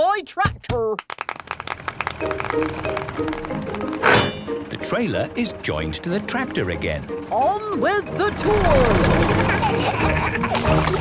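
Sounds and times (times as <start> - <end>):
cartoon tractor engine chugging: 1.6 - 11.0
background music: 1.7 - 11.0
wheels splashing through mud: 8.2 - 11.0.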